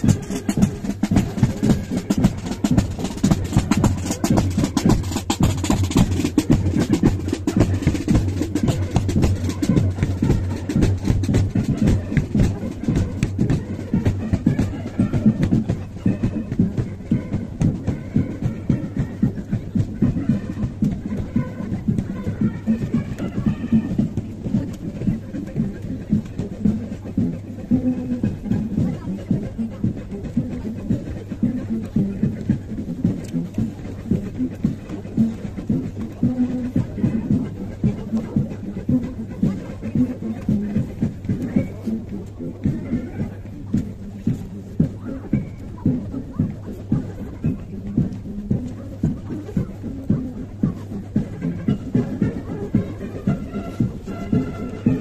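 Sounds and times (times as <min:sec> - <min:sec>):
military brass band playing a march: 0:00.0 - 0:55.0.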